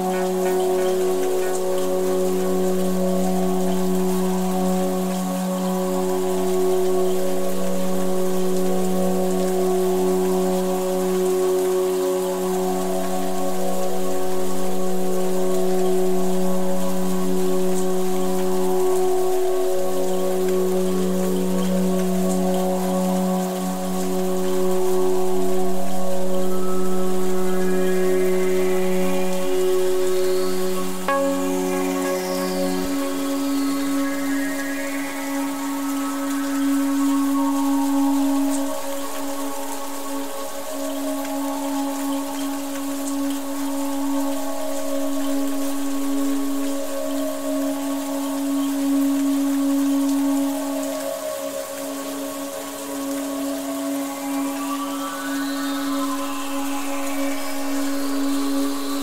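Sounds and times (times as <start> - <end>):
ambient synth pad chords: 0.0 - 59.0
rainfall hiss: 0.0 - 59.0.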